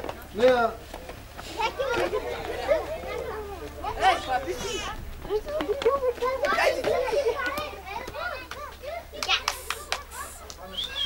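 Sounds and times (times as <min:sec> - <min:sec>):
children shouting: 0:01.5 - 0:11.0.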